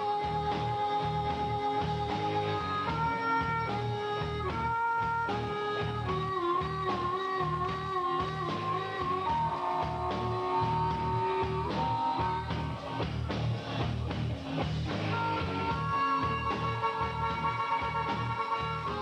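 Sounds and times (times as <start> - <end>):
harmonica bending lead notes: 0.0 - 19.0
live rock band playing: 0.0 - 19.0.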